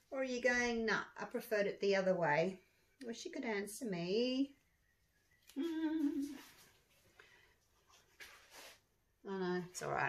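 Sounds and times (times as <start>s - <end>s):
woman humming: 5.5s - 6.5s.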